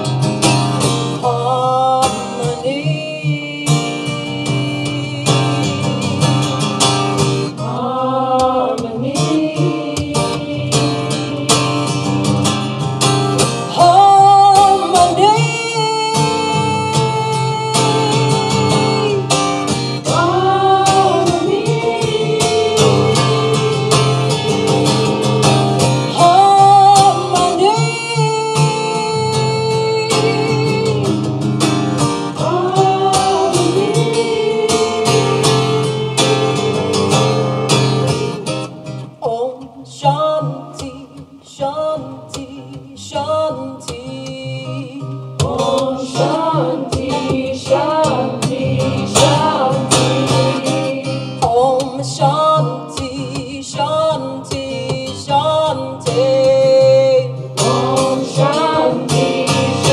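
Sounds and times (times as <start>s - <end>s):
strummed acoustic guitar: 0.0s - 59.9s.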